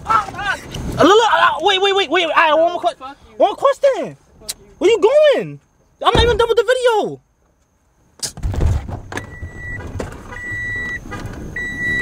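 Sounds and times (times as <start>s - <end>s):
rustling and knocks: 8.4s - 10.4s
car warning chime beeping: 9.2s - 12.0s.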